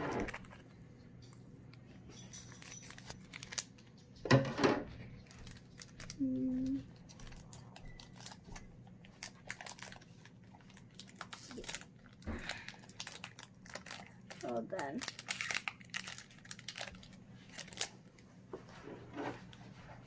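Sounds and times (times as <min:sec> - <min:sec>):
foil wrapper crinkling: 0:02.4 - 0:04.0, 0:05.2 - 0:18.2
scissors snipping foil: 0:12.5 - 0:16.9.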